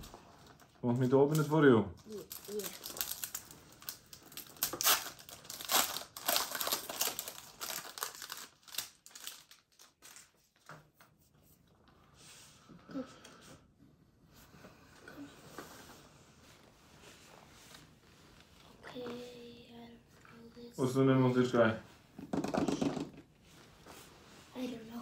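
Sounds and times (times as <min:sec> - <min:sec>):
foil wrapper crinkling: 0:00.4 - 0:10.6.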